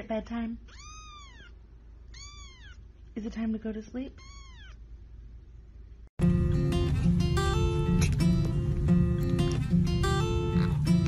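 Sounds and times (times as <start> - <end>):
kitten meowing: 0.7 - 2.9, 4.2 - 4.8.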